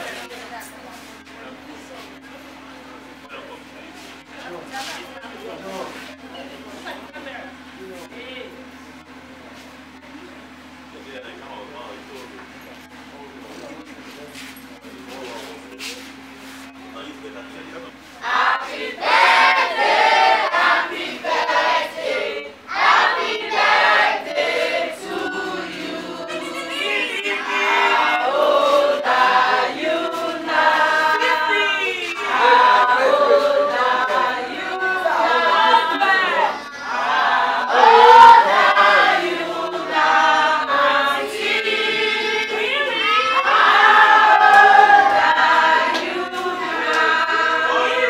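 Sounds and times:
group of voices singing: 0:18.2 - 0:48.0.

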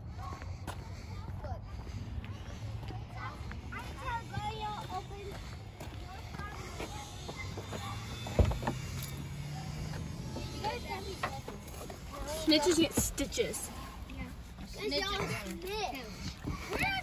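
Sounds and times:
voices murmuring: 0:00.0 - 0:17.0.

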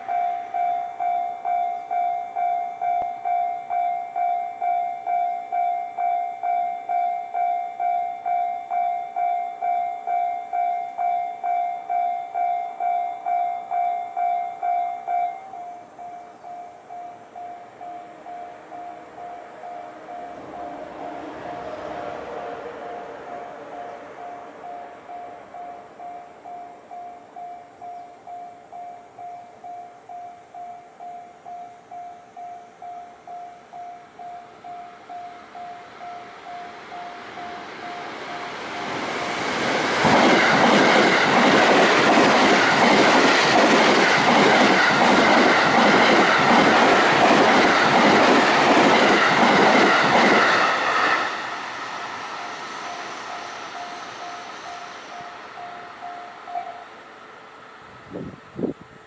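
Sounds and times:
train passing at speed: 0:00.0 - 0:59.0.

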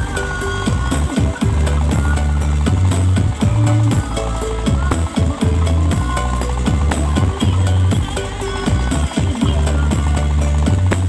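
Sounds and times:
loud music with heavy bass: 0:00.0 - 0:11.0
steady ticking beat: 0:00.0 - 0:11.0.

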